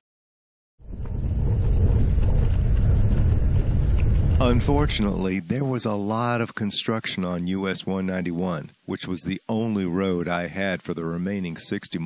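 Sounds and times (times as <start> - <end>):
wind buffeting microphone: 0.8 - 5.4.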